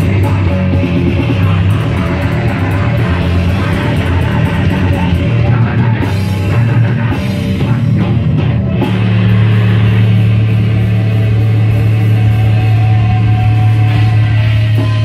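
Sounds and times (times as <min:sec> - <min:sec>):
bass guitar: 0:00.0 - 0:15.0
distorted electric guitars: 0:00.0 - 0:15.0
drum kit: 0:00.0 - 0:15.0.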